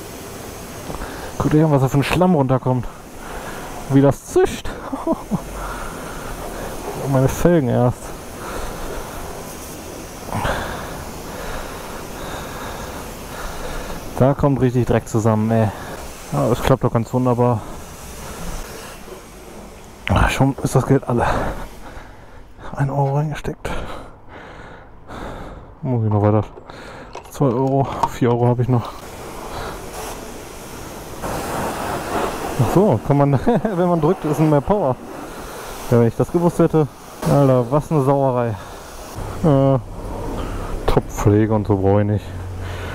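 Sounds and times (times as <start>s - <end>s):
pressure washer spray hissing: 0.0s - 22.6s, 28.7s - 42.9s.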